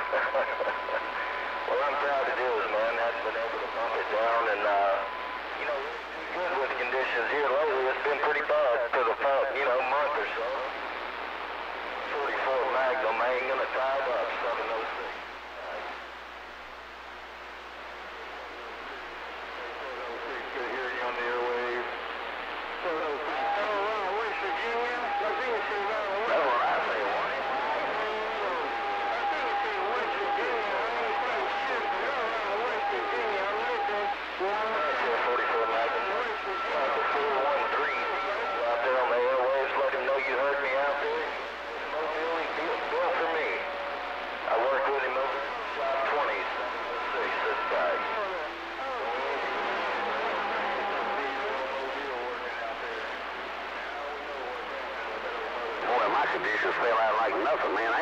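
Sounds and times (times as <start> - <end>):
whistling radio tones: 0.0 - 16.0, 17.9 - 58.0
radio static hiss: 0.0 - 58.0
voices over radio: 0.0 - 58.0.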